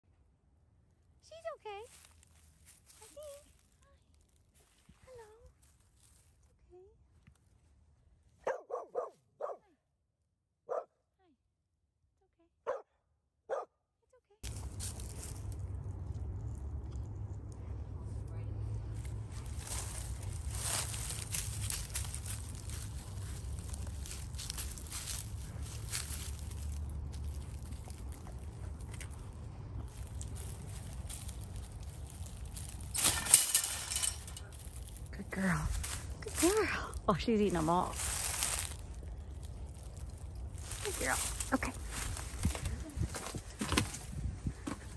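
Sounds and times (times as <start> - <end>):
dog barking: 8.4 - 9.7, 10.7 - 10.9, 12.6 - 13.7
steady low noise with rustling: 14.4 - 44.9.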